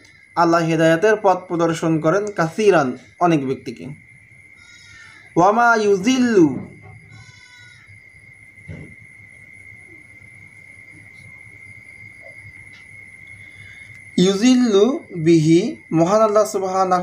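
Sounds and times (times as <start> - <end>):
faint low hum: 0.0 - 17.0
high-pitched electronic whine: 0.0 - 17.0
man chanting recitation: 14.2 - 17.0.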